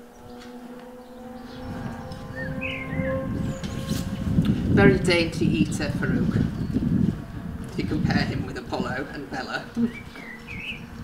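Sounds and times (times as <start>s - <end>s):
bird chirping: 0.0s - 4.2s, 5.5s - 8.3s, 9.7s - 11.0s.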